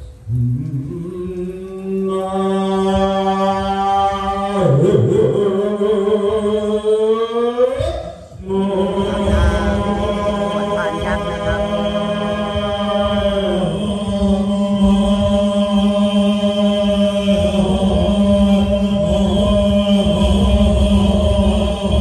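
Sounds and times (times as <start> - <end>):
monks chanting in low drone: 0.0 - 22.0.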